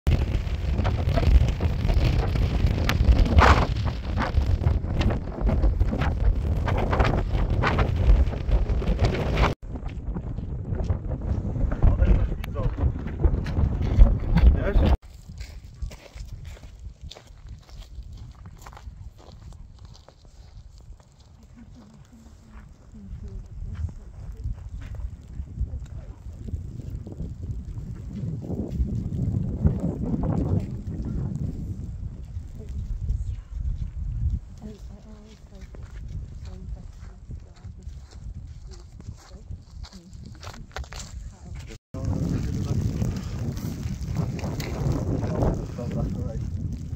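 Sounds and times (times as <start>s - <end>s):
wind buffeting microphone: 0.1s - 46.9s
hooves crunching on frozen grass: 13.3s - 46.9s.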